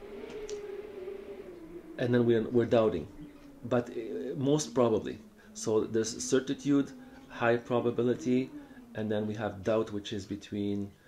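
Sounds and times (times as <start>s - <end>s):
faint steady hum: 0.0s - 11.0s
soft click: 0.3s - 0.6s.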